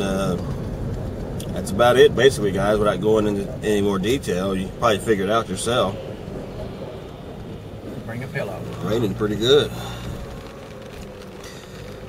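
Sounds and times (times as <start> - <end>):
vehicle cabin rumble and hiss: 0.0 - 12.0.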